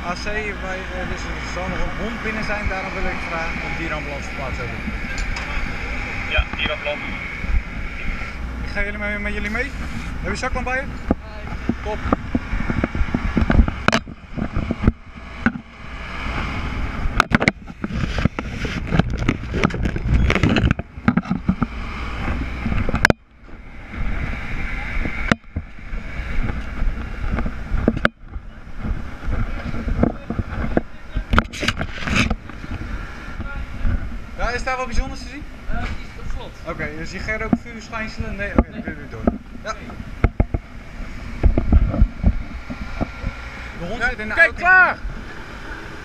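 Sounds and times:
camera handling rumble: 11.0 - 15.7, 17.1 - 23.2, 26.4 - 33.5, 40.2 - 43.5.

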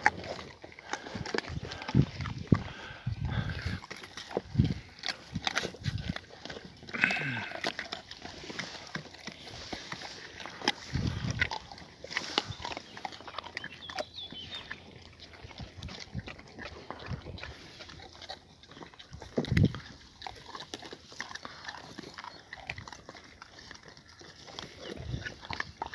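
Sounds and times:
dogs chewing meat and bones: 0.0 - 25.9.

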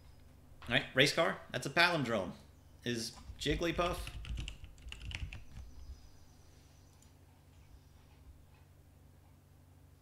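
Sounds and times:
low steady hum: 0.0 - 10.0
computer keyboard typing: 3.7 - 5.7.

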